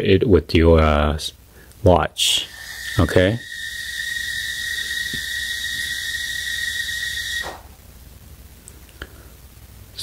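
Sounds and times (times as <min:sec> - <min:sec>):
high-pitched whistling tone: 0:02.3 - 0:07.6
hiss: 0:02.3 - 0:07.6.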